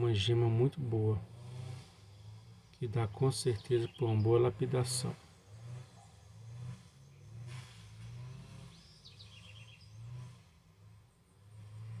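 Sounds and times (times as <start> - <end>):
small bird chirping: 8.6 - 10.1.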